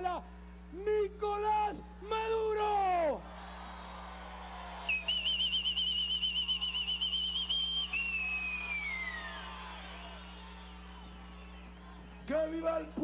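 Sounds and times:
trilling whistle blast: 0:04.8 - 0:11.7
whistle tone sliding downward: 0:04.9 - 0:09.5.

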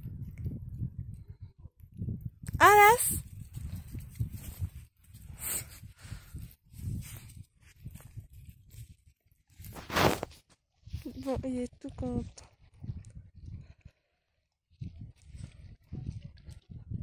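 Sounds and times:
footsteps and paws crunching snow: 0:03.5 - 0:08.9.

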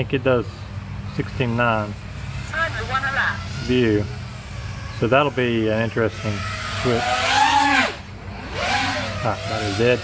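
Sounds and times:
quadcopter motors whining: 0:00.0 - 0:10.0.

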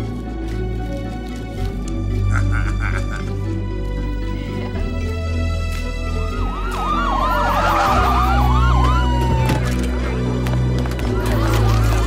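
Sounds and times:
siren wail effect: 0:06.4 - 0:09.9.

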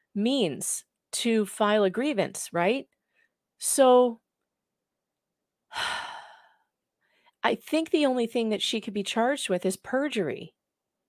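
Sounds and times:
woman sighing: 0:05.7 - 0:06.6.

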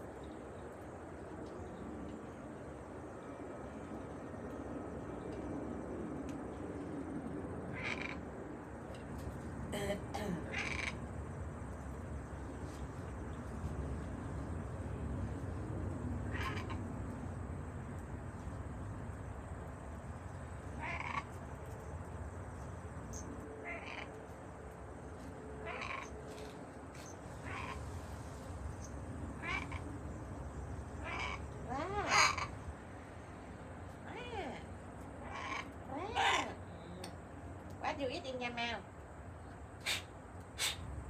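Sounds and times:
low outdoor rumble: 0:00.0 - 0:41.0
parrots chirping and squawking: 0:07.7 - 0:08.3, 0:10.5 - 0:11.0, 0:16.3 - 0:16.9, 0:20.8 - 0:21.4, 0:23.1 - 0:24.2, 0:25.6 - 0:26.2, 0:27.0 - 0:27.9, 0:28.8 - 0:29.9, 0:31.0 - 0:32.7, 0:35.2 - 0:36.6.

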